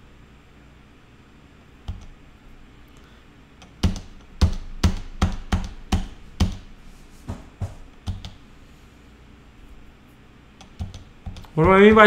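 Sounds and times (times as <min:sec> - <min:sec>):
computer keyboard key presses: 0:03.6 - 0:06.7, 0:08.0 - 0:08.4, 0:10.6 - 0:12.0.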